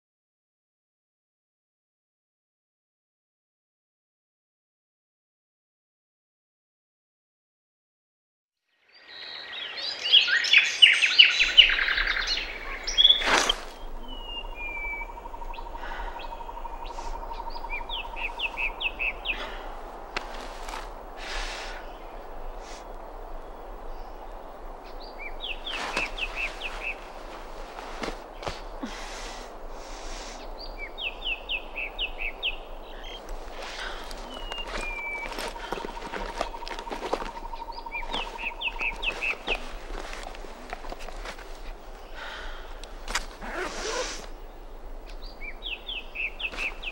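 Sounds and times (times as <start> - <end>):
songbirds chirping: 8.7 - 46.9.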